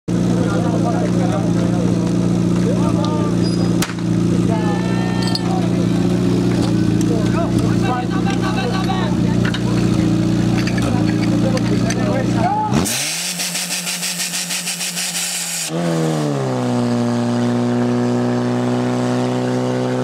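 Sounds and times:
pump engine running: 0.4 - 15.8
people shouting: 4.4 - 6.0.

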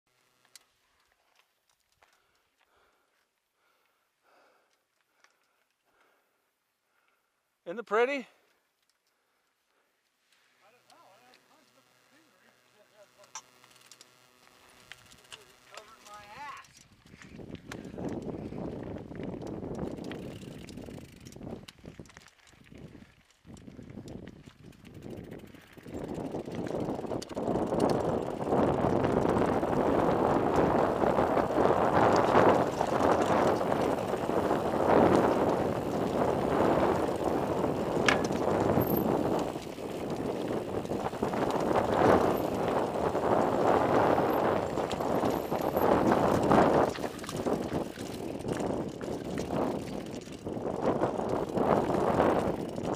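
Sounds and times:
bicycle tyres crunching on gravel: 0.1 - 3.9, 8.4 - 52.9.

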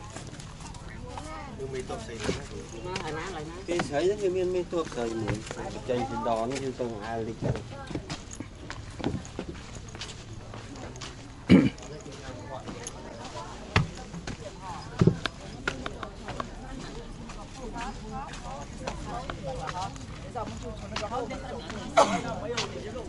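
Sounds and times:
people talking: 0.0 - 23.0.

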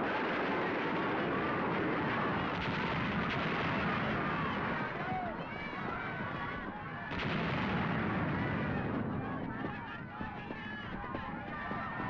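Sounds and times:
explosions: 0.0 - 10.9
gunfire: 0.2 - 5.4, 7.1 - 9.2.

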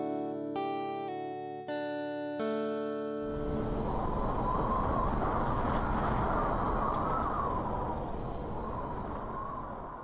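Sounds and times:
faint wavering whistling tones: 3.3 - 10.0
steady rushing noise: 3.3 - 10.0.

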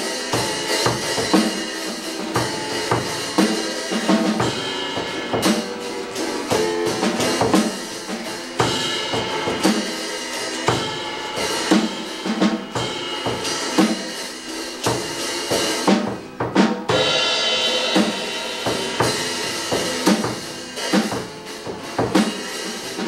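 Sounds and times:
rock drum beat: 0.0 - 23.0.

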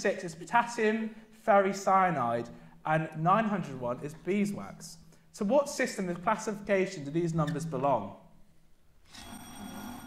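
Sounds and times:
quiz buzzer tone: 9.1 - 10.0.

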